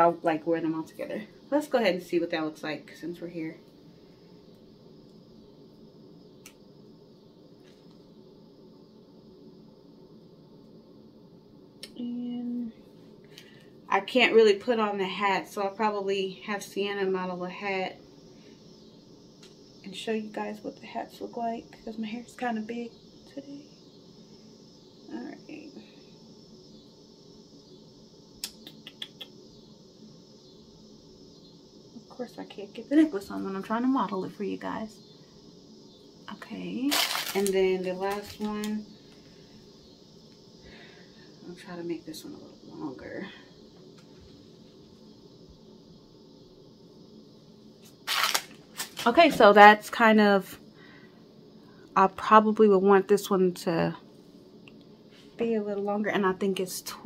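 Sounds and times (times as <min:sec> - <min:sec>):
room hum: 0:00.0 - 0:57.0.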